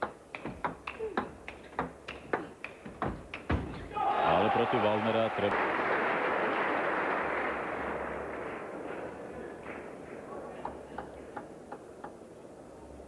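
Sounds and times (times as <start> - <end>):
table tennis ball bouncing: 0.0 - 3.7
audience applause: 4.1 - 10.6.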